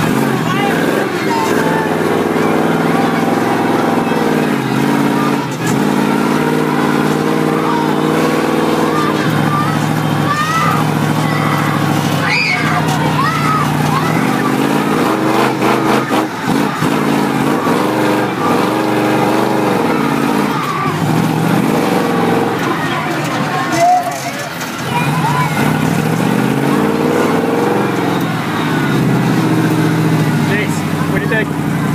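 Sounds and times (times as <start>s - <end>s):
truck engine revving: 0.0s - 31.9s.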